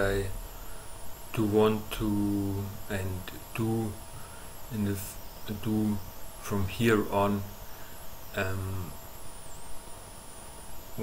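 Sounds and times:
background hiss: 0.0 - 11.0
faint high-pitched whine: 0.0 - 11.0.

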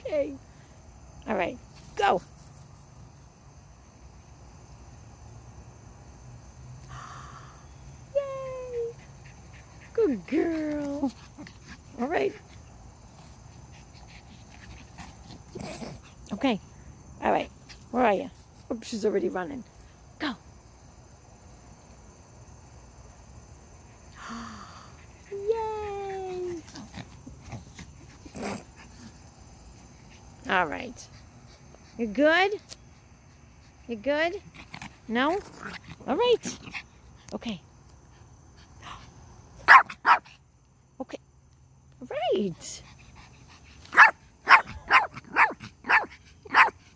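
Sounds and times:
small dog barking: 39.6 - 40.3, 43.9 - 46.8.

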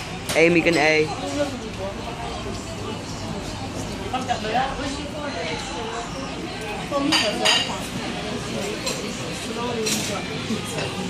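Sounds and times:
cutlery clinking on plates: 7.0 - 7.9, 8.6 - 10.9.

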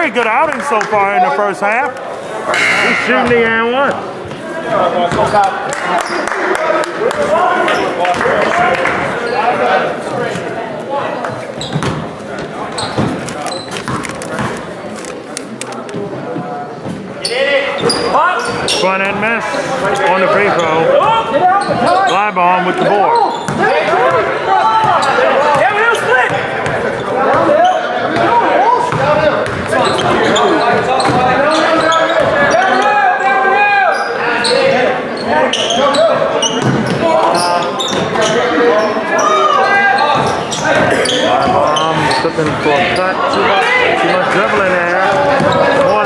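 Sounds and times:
voices echoing in gym: 0.0 - 46.0.

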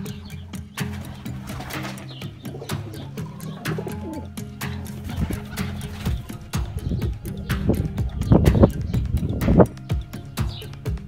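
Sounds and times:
music: 0.0 - 11.0
pigeons cooing: 0.0 - 11.0.

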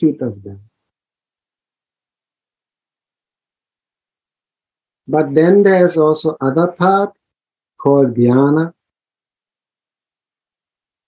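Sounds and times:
very faint hiss: 0.0 - 11.0.

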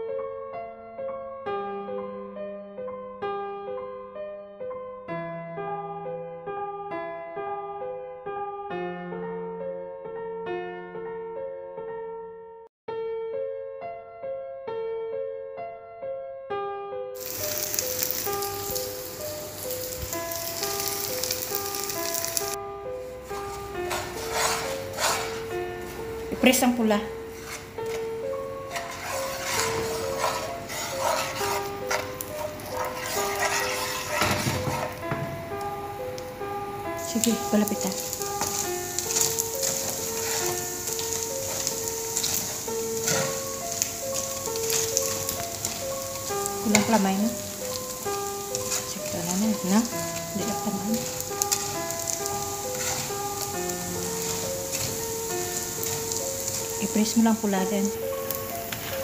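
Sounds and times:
gentle piano music: 0.0 - 59.0
oil sizzling in a pan: 17.2 - 59.0
spatula scraping a pan: 23.1 - 26.1, 27.2 - 35.2, 37.5 - 59.0.

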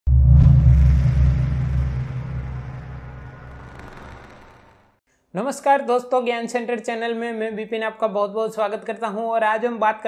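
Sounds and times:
deep rumbling boom: 0.1 - 4.9.

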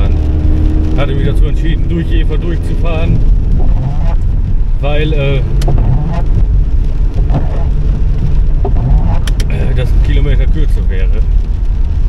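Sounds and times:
rain on windscreen: 0.0 - 12.0
road and engine rumble in car: 0.0 - 12.0.

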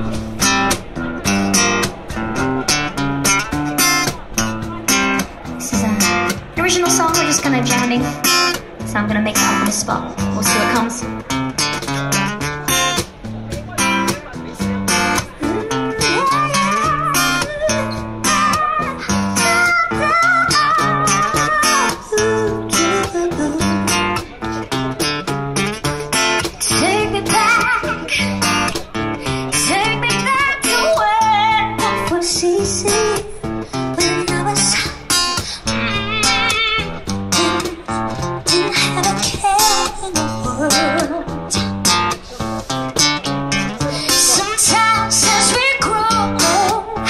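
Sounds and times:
acoustic guitar strumming: 0.0 - 47.0
woman singing: 5.6 - 8.2, 8.9 - 11.2, 15.4 - 24.2, 26.6 - 35.8, 37.4 - 41.8, 43.5 - 47.0.

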